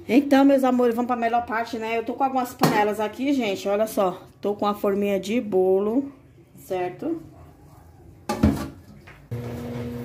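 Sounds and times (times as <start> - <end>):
washing machine humming: 9.3 - 10.0.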